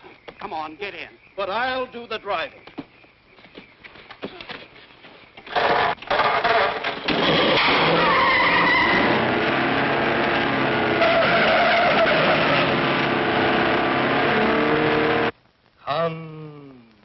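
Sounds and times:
tires squealing: 0:06.4 - 0:15.3
car engine running hard: 0:07.1 - 0:15.3.

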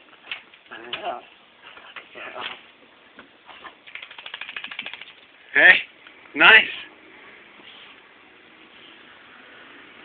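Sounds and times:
rapid rhythmic scratching: 0:03.8 - 0:05.3.

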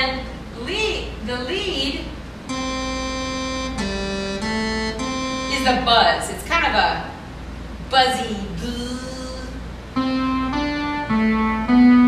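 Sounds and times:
buzzy synth lead note: 0:02.5 - 0:05.9, 0:10.0 - 0:12.0.

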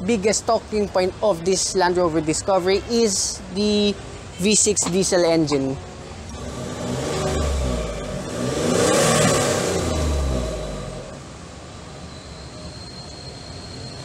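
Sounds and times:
diesel engine revving and idling: 0:06.0 - 0:11.8.

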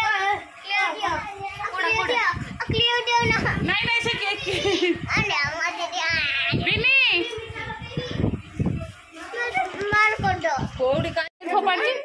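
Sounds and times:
children's voices: 0:00.0 - 0:12.0
people chattering: 0:00.0 - 0:12.0.

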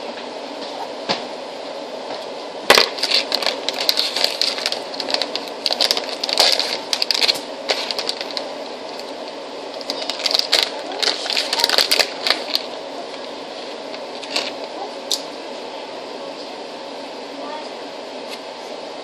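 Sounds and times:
plastic packaging crinkling: 0:02.7 - 0:15.2.

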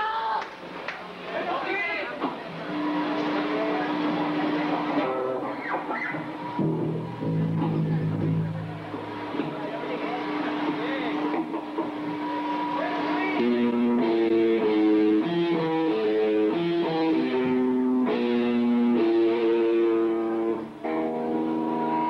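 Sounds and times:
electric guitar riff: 0:02.5 - 0:22.0.

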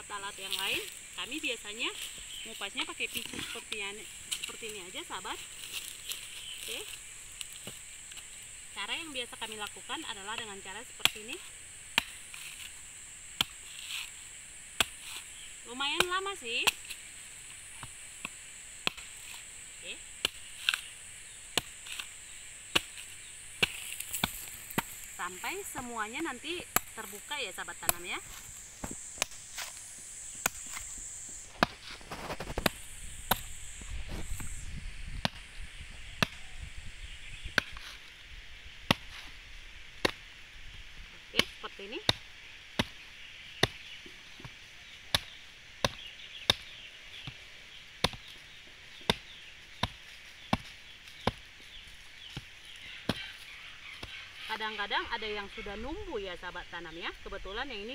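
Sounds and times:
knife chopping coconut husk: 0:09.5 - 0:17.1, 0:17.7 - 0:20.9, 0:21.5 - 0:33.6, 0:37.5 - 0:38.0, 0:38.9 - 0:39.3, 0:40.0 - 0:40.3, 0:41.4 - 0:47.4, 0:48.0 - 0:51.6, 0:52.3 - 0:53.4.

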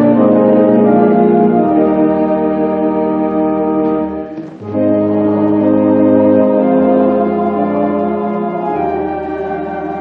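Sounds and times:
organ chords: 0:00.0 - 0:10.0
church choir singing: 0:04.4 - 0:10.0.

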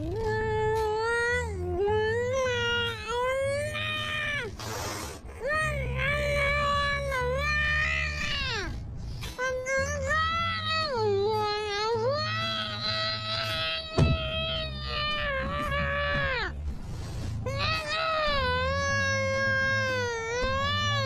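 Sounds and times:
breathy nasal sound: 0:04.6 - 0:05.3.

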